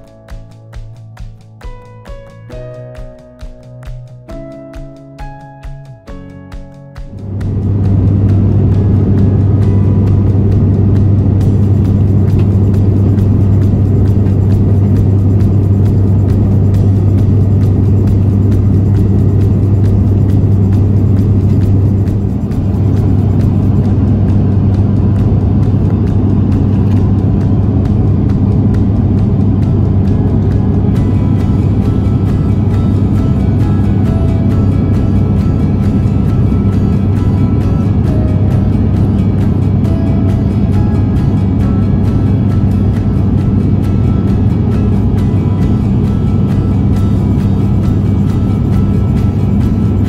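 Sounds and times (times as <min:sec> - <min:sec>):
airliner cabin engine drone: 0:07.1 - 0:50.0.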